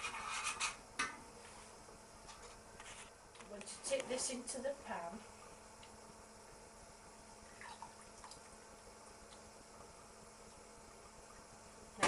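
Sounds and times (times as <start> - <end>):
juices dripping into saucepan: 5.7 - 12.0.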